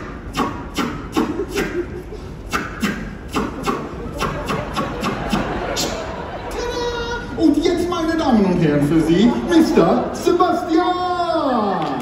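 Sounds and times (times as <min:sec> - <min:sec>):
man beatboxing clicks and pops: 0:00.0 - 0:06.0.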